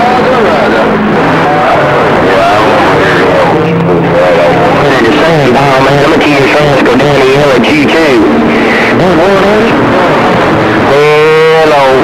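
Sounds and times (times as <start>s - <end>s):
garbled radio voices: 0.0s - 12.0s
radio static: 0.0s - 12.0s.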